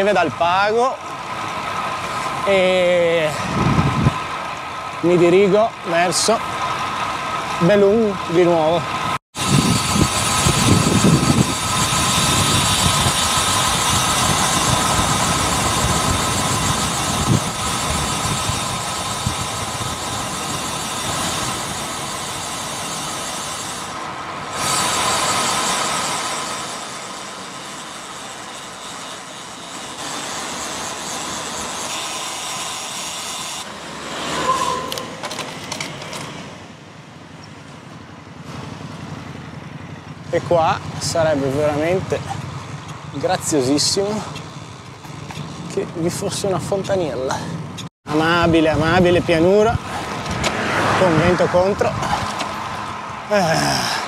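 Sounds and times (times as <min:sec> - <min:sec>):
bike tyres on asphalt: 0:00.0 - 0:54.0
wind on microphone: 0:03.4 - 0:04.3, 0:09.4 - 0:21.8.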